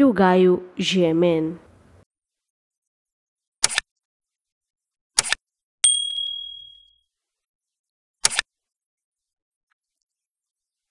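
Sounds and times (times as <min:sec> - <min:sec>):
bright bell ding: 0:05.8 - 0:06.9.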